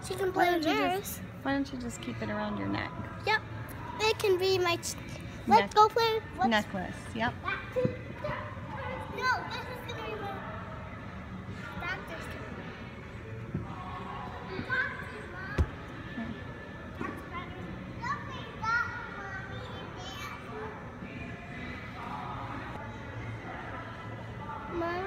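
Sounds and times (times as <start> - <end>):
indoor hall background din: 0.0 - 25.0
children calling and chattering: 7.4 - 10.8.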